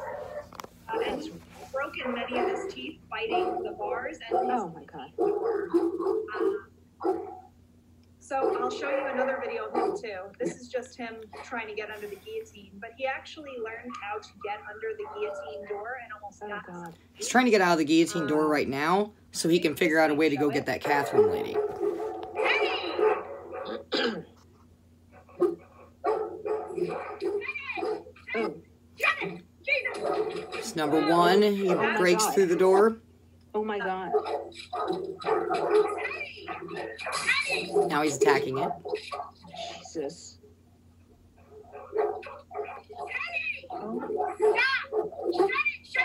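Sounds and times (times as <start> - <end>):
dog barking: 0.0 - 1.4, 2.0 - 7.5, 8.3 - 10.3, 15.0 - 15.9, 20.5 - 23.8, 25.2 - 32.4, 34.1 - 39.6, 41.4 - 45.8
woman saying uh: 0.9 - 5.1, 30.8 - 32.6, 33.6 - 34.1, 39.5 - 40.4.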